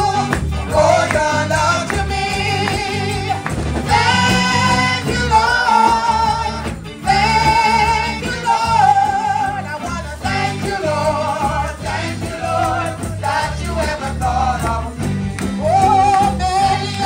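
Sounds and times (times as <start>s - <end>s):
woman singing gospel song: 0.0s - 15.0s, 15.6s - 17.0s
instrumental backing: 0.0s - 17.0s.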